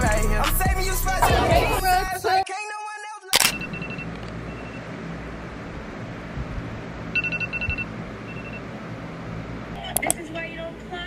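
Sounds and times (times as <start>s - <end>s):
low hum: 1.1s - 2.2s
high electronic alarm beeps: 7.2s - 8.6s.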